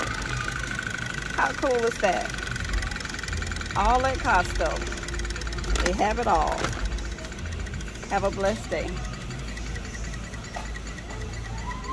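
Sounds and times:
shop background hum: 0.0 - 11.9.

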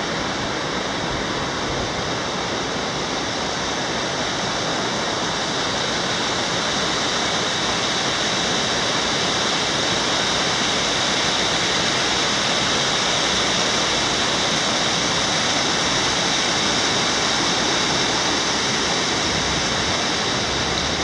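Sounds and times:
creek water rushing over boulders: 0.0 - 21.0.

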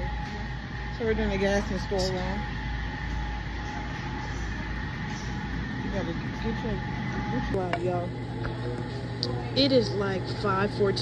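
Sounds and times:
faint voices: 0.0 - 11.0
low background hum: 0.0 - 11.0.

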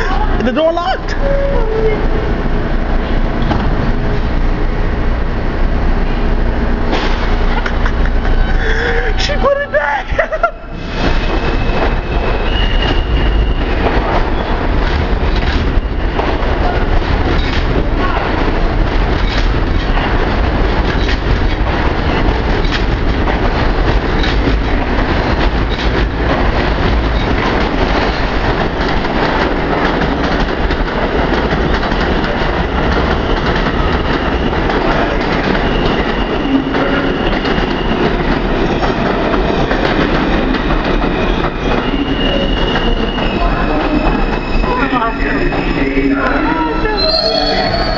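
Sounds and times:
subway train rumble and wheel clatter: 0.0 - 47.9
train wheels squealing: 11.0 - 14.6, 33.1 - 47.9.

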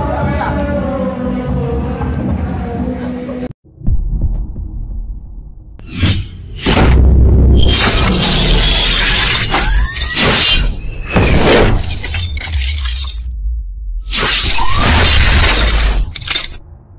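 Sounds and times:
deep bass rumble: 3.7 - 8.6, 13.3 - 14.1
glassy shattering crashes: 7.7 - 13.3, 14.1 - 16.6.

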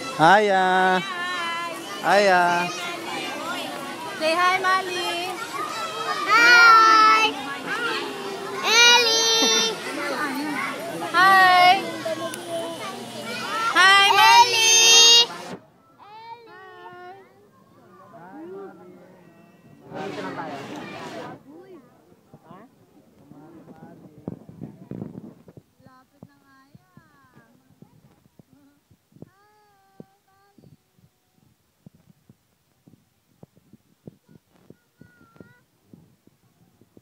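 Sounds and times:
people chattering: 0.0 - 37.0.

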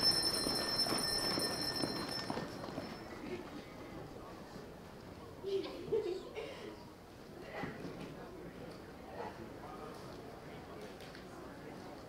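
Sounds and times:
high-pitched ringing: 0.0 - 3.4.

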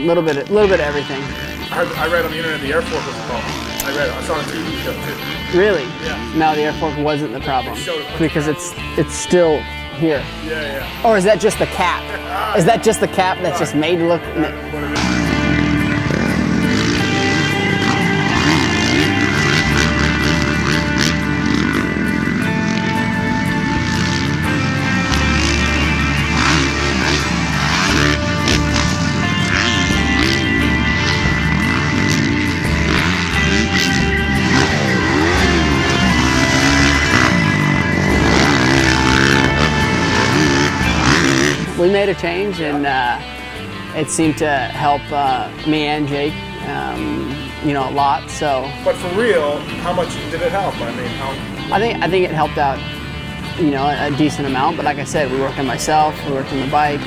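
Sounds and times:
background music with beat: 0.0 - 57.0
motocross bike engine revving: 0.0 - 57.0.

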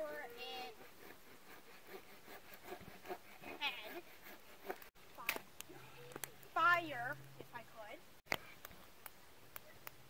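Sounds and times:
campfire crackling: 4.6 - 10.0.

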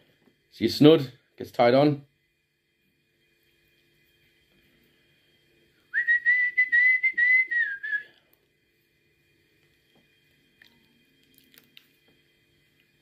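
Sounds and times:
high whistling note: 5.8 - 8.2.

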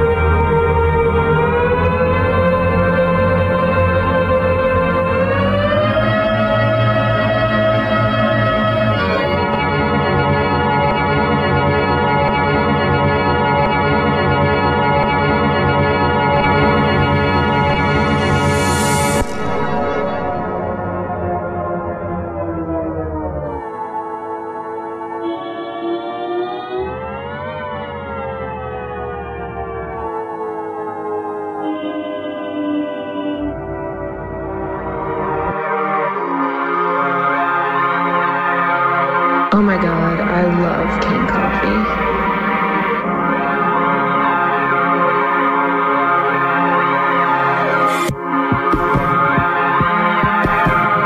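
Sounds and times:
synthesizer drone gliding in pitch: 0.0 - 51.0.

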